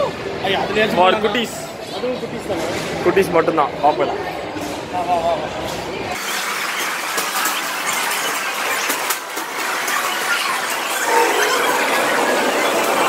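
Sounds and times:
arcade game machines din: 6.0 - 13.0
held electronic tones: 10.7 - 13.0.

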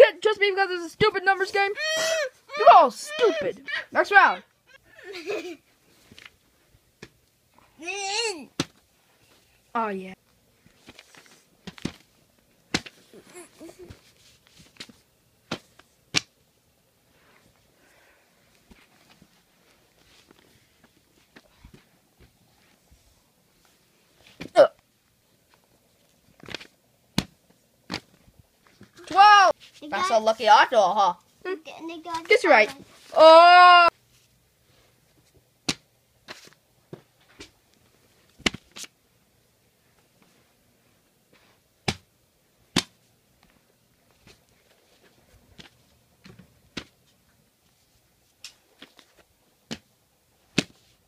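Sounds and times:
person yelping: 1.6 - 5.2, 7.8 - 8.5, 33.2 - 33.9.

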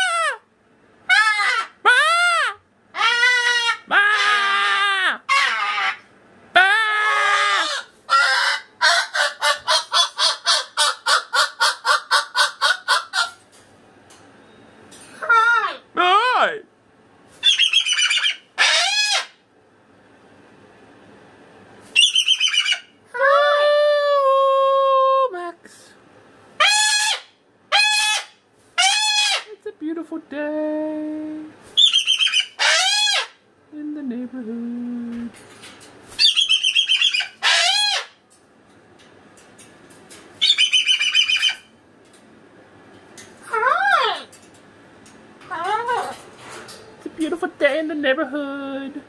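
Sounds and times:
cockatoo screeching: 0.0 - 0.4, 1.1 - 13.4, 17.4 - 19.4, 22.0 - 23.5, 26.6 - 29.5, 31.8 - 33.4, 36.2 - 38.2, 40.4 - 41.7, 43.4 - 44.3
cockatoo chattering: 1.1 - 6.1, 7.0 - 13.4, 17.4 - 19.4, 26.6 - 29.6, 31.8 - 33.4, 36.2 - 38.2, 40.4 - 41.7, 45.5 - 46.2
cockatoo call rising and falling: 22.0 - 24.1.

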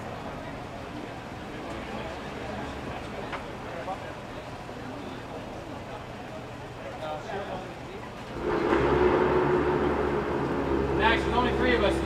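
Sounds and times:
machine drone: 8.4 - 12.0.

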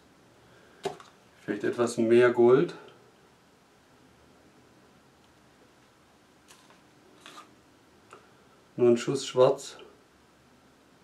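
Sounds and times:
plastic cup rustle and knock: 0.8 - 1.2.

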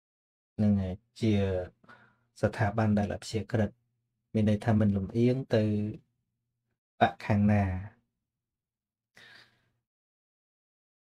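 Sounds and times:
man breathing: 1.8 - 2.3, 9.2 - 9.7.

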